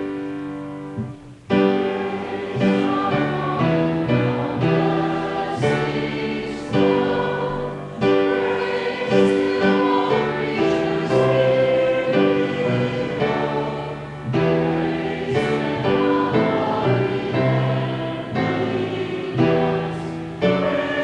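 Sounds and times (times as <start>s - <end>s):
church choir singing: 0.0s - 21.0s
keyboard accompaniment: 0.0s - 21.0s.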